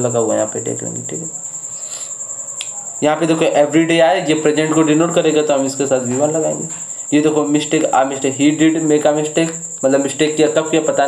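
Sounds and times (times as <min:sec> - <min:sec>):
high-pitched pulsing tone: 0:00.0 - 0:06.8.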